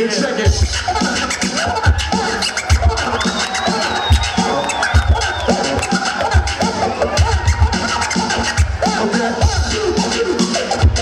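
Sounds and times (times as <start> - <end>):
hip-hop beat with kick drum: 0.4 - 11.0
vinyl scratching: 0.7 - 11.0.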